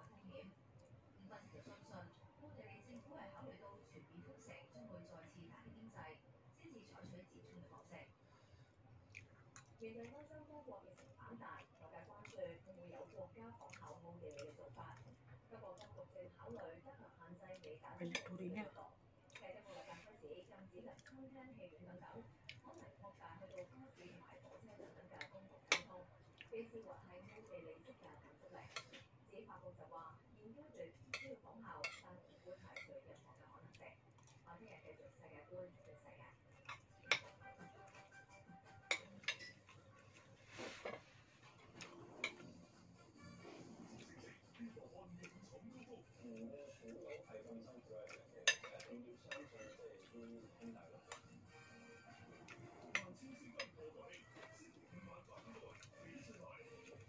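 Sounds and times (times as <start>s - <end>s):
metal spoon clinking on plate: 38.9s - 39.7s, 48.4s - 49.8s.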